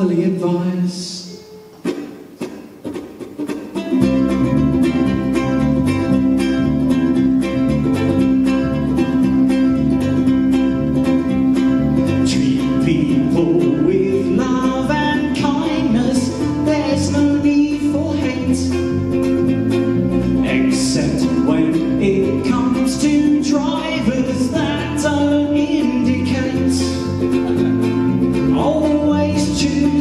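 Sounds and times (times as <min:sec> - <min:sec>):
ukulele strumming: 0:00.0 - 0:30.0
electric bass guitar: 0:03.9 - 0:30.0.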